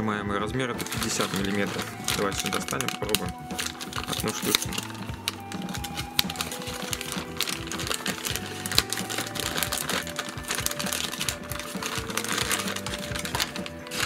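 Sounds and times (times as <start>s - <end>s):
soft background music: 0.0s - 14.0s
plastic bag crinkling: 0.8s - 14.0s.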